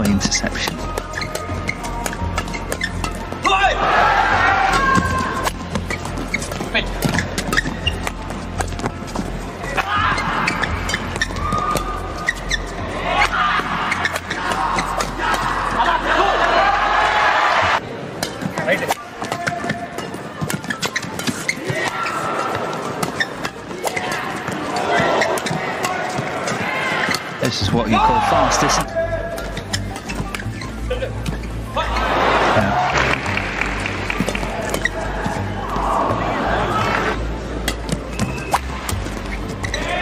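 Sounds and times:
shoes squeaking on court: 0.0 - 3.5, 4.7 - 16.0, 18.1 - 27.4, 29.3 - 40.0
background music: 0.0 - 19.2, 26.6 - 40.0
rackets hitting shuttlecock: 4.7 - 12.6, 18.2 - 27.3, 37.6 - 39.8.

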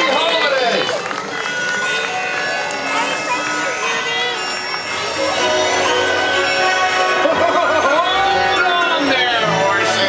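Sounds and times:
parade music over loudspeakers: 0.0 - 10.0
singing voices: 3.1 - 10.0.

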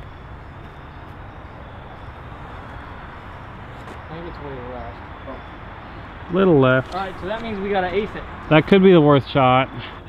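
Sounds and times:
distant road traffic hum: 0.0 - 10.0.

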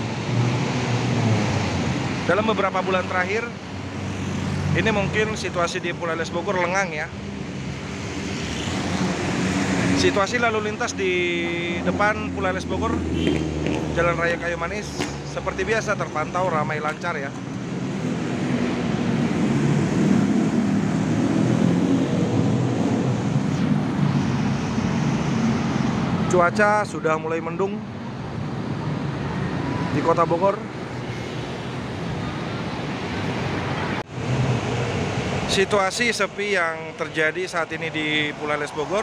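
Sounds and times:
cars and motorbikes passing: 0.0 - 39.0
road traffic rumble: 0.0 - 39.0.

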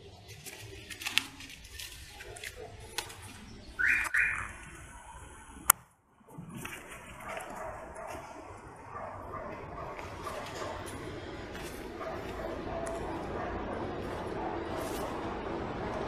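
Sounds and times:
paper fire crackling: 0.0 - 4.0.

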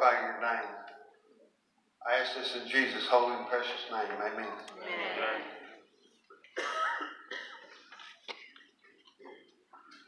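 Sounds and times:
person clearing throat coughing: 6.5 - 8.6.

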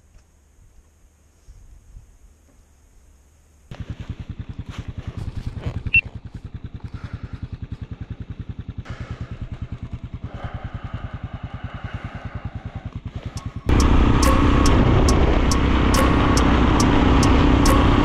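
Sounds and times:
motorcycle engine idling: 3.7 - 18.0
loud steady sound with ticking beat: 13.3 - 18.0.

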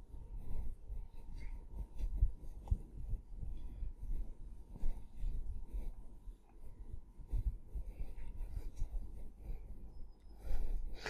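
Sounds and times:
cloth wiping a whiteboard: 0.0 - 11.0.

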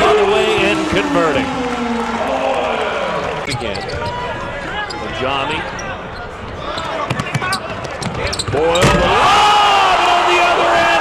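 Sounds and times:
commentator talking: 0.0 - 1.6.

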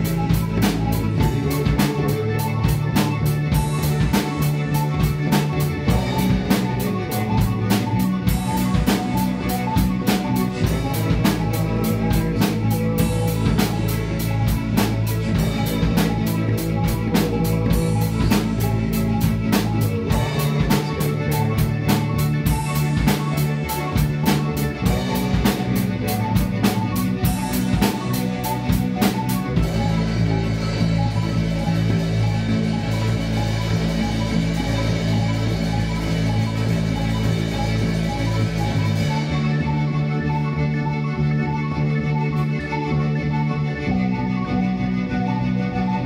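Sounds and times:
drum kit: 0.0 - 40.5
electric bass: 0.0 - 46.0
keyboard: 0.0 - 46.0.

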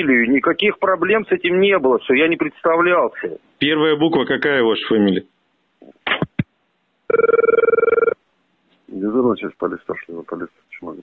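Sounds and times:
telephone ring tone: 7.1 - 8.2.

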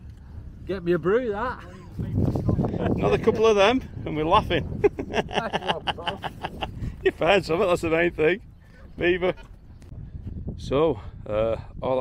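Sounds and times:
man laughing: 2.7 - 3.4, 4.7 - 7.0.

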